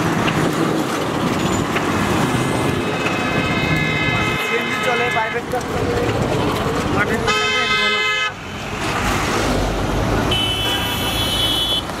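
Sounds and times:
vehicle engine rumbling: 0.0s - 12.0s
vehicle horns: 2.7s - 5.6s, 7.1s - 8.4s, 10.2s - 12.0s.

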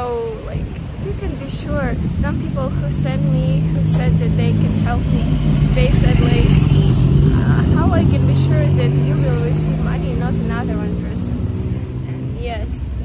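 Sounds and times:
woman speaking: 0.0s - 11.4s, 12.1s - 13.0s
vehicle engine humming: 0.0s - 13.0s.

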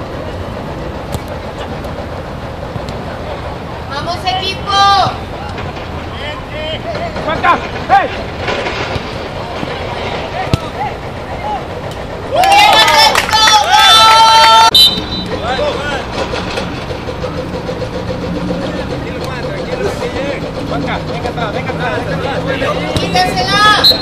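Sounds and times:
players shouting: 3.9s - 8.2s, 8.9s - 16.1s, 19.6s - 24.0s.

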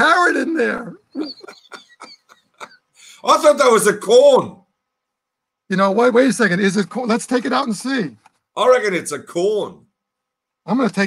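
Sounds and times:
man laughing: 1.0s - 3.0s.

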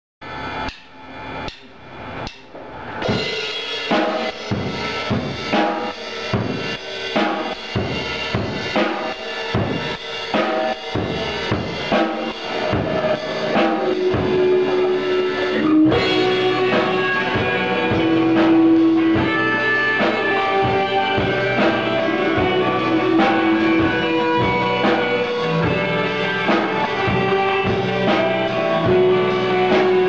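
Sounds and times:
rock band instruments: 0.2s - 30.0s
rock drum beat: 0.3s - 30.0s.

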